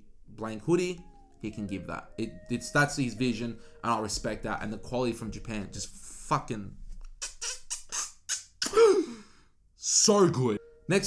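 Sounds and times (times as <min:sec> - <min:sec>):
breathy voiced sound falling in pitch: 0:07.2 - 0:09.3.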